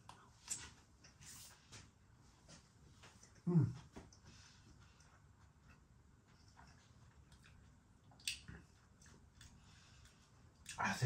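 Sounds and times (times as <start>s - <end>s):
faint chewing of crispy food: 0.0s - 11.0s.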